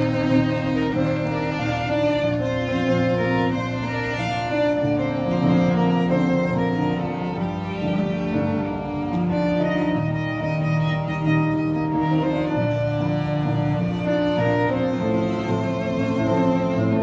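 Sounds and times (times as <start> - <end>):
cello bass notes: 0.0 - 17.0
violin melody: 0.0 - 17.0.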